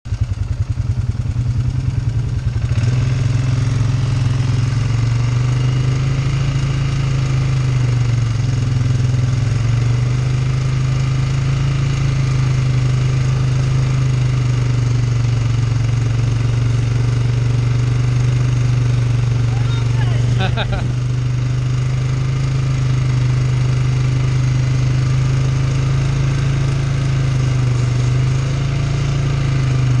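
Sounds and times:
quad bike engine running: 0.1s - 30.0s.

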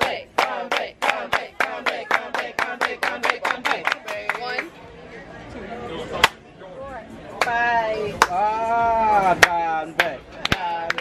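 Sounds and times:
hands clapping: 0.4s - 4.7s, 6.2s - 6.4s, 9.4s - 11.0s.

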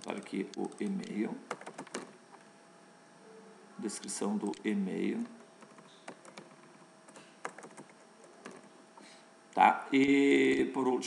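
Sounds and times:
keyboard key clicks: 0.1s - 2.1s.

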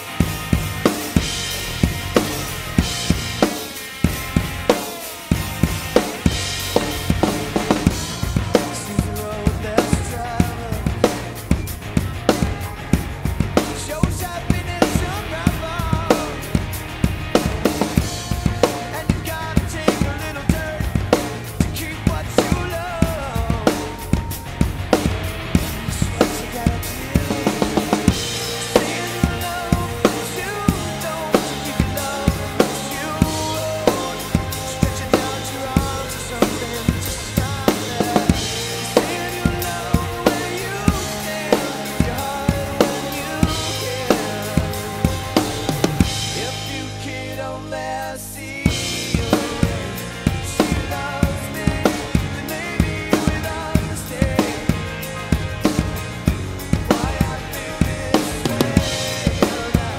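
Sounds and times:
drum kit rock beat: 0.0s - 59.9s
recorded rock song: 0.0s - 59.9s.

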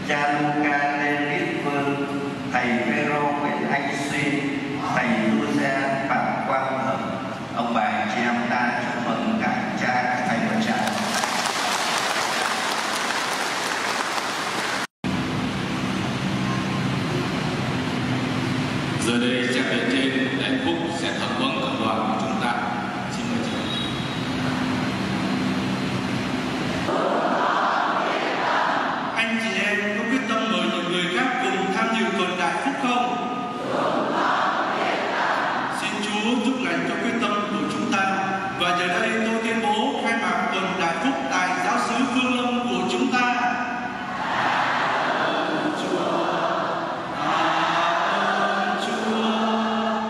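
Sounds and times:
steady low hum: 0.0s - 11.2s, 15.1s - 44.3s
congregation singing a hymn: 26.9s - 29.2s, 33.0s - 36.0s, 44.1s - 50.0s.

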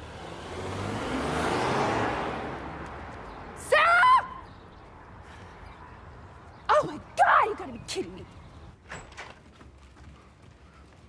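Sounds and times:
woman shouting high-pitched: 3.6s - 4.4s, 6.7s - 8.2s.

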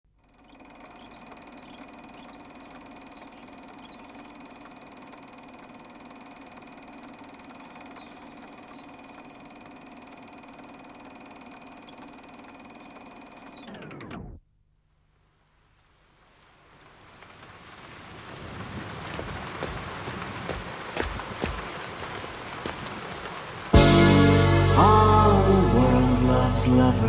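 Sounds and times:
film projector whirring and clicking: 0.1s - 14.4s.

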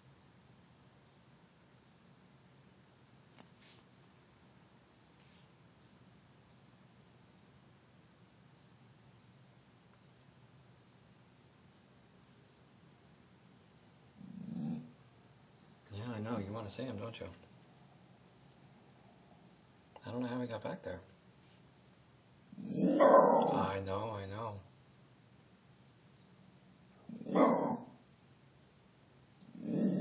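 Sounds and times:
dog growling: 14.2s - 15.0s, 22.5s - 23.8s, 27.0s - 28.0s, 29.4s - 30.0s.

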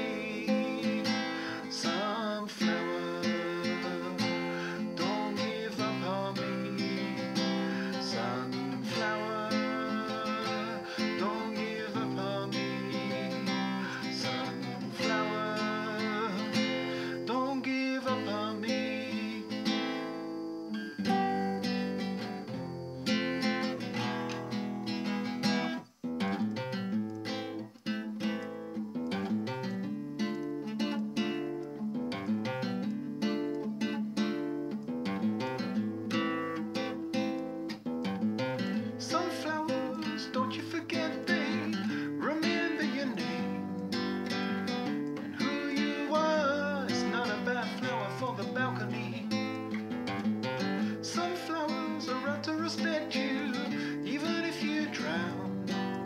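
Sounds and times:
man singing: 0.0s - 20.3s, 39.0s - 44.0s, 44.8s - 49.6s, 50.6s - 56.0s
classical guitar playing chords: 0.0s - 56.0s.

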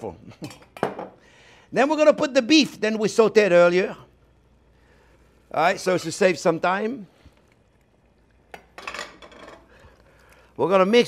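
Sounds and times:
metal kitchenware clattering on pot: 8.6s - 9.7s.

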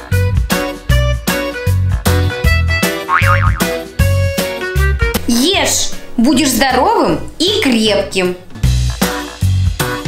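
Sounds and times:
upbeat background music: 3.0s - 6.9s
warbling cartoon sound effect: 3.1s - 3.8s.

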